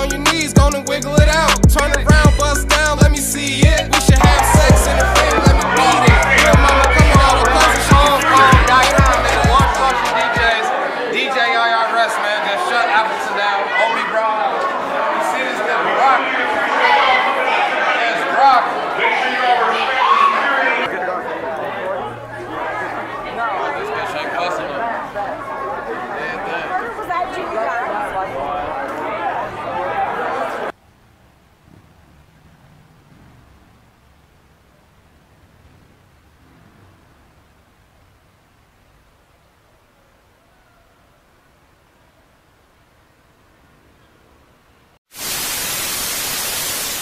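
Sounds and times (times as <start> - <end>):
people talking at once: 3.9 - 30.7
television static hiss: 37.5 - 47.0.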